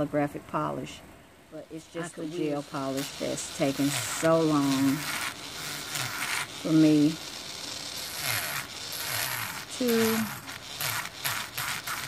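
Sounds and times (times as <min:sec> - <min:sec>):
nail drill grinding nail: 0:01.7 - 0:12.0
high drill whine: 0:01.8 - 0:12.0.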